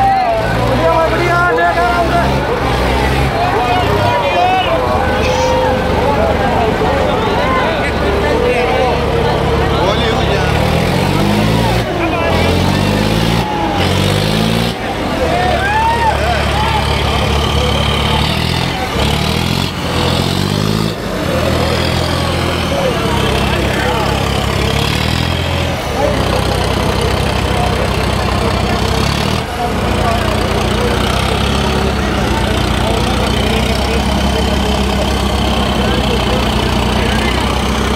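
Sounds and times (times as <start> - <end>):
crowd shouting and chattering: 0.0 - 37.9
tractor diesel engine revving: 0.0 - 37.9.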